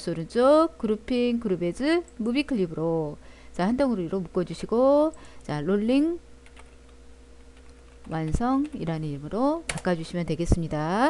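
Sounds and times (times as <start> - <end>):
low steady hum: 0.0 - 11.0
keyboard typing: 6.4 - 9.0.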